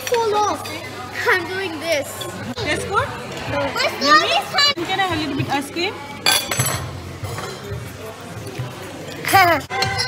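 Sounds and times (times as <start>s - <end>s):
cutlery clinking on a plate: 6.2s - 7.8s.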